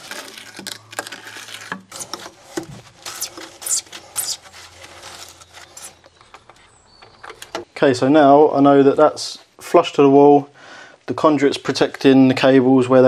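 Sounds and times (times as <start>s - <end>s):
plastic conduit scraping and clicking: 0.0s - 7.7s.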